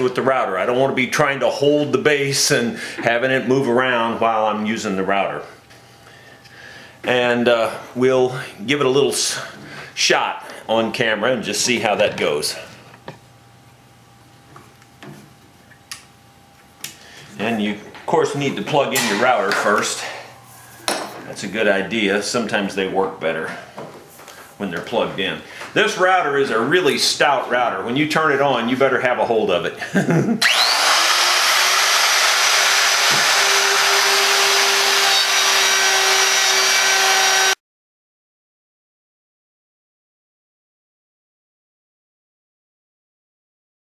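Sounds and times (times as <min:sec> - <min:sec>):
electric router whining: 0:30.4 - 0:37.6
router cutting wood: 0:30.4 - 0:37.6.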